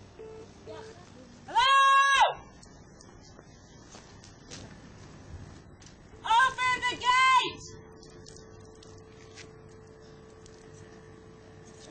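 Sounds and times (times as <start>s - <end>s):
faint steady hum: 0.0s - 11.9s
person shouting high-pitched call: 6.2s - 7.7s.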